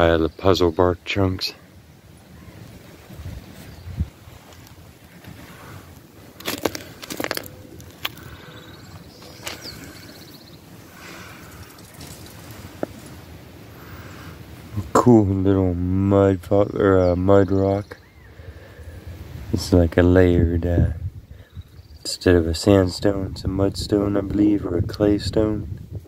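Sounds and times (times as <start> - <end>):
stones and gravel crunching: 4.3 - 10.4, 11.0 - 13.2.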